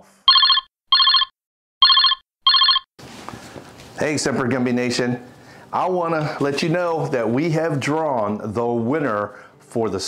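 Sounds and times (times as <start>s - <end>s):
telephone ringing: 0.3s - 2.9s.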